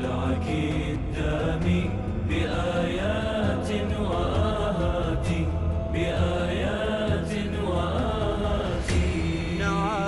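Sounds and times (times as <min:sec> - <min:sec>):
low vocal drone: 0:00.0 - 0:10.0
wordless sung melody: 0:00.0 - 0:10.0.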